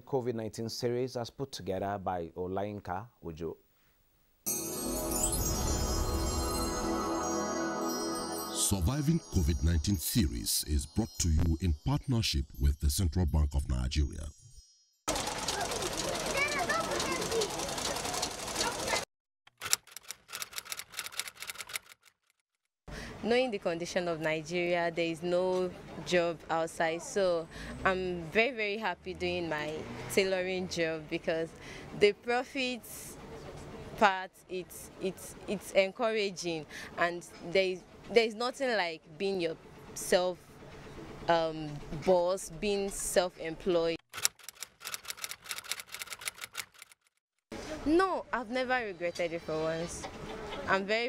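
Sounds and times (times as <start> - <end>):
sewing machine clicking: 15.1 - 22.2, 44.1 - 47.1.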